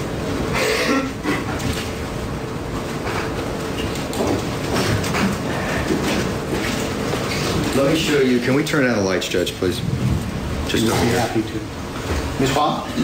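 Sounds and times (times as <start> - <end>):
faint hum: 0.0 - 13.0
low rumble: 9.5 - 12.0.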